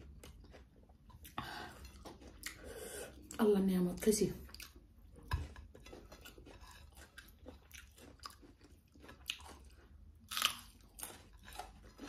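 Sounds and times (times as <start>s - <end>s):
chewing rice: 0.0s - 3.5s, 4.4s - 12.0s.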